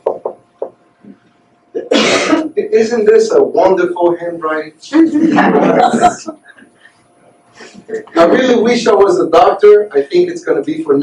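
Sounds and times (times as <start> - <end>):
marker knocking on whiteboard: 0.0 - 0.8
man talking: 1.8 - 6.2, 7.9 - 11.0.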